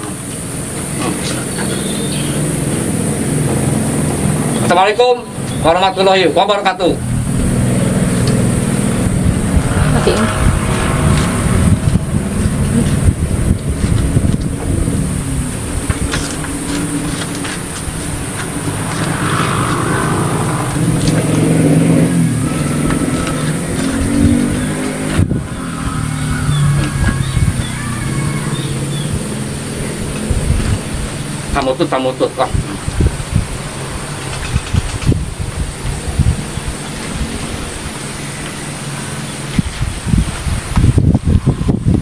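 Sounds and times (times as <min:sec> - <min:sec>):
constant high hiss: 0:00.0 - 0:41.4
motor engine humming: 0:00.0 - 0:41.9.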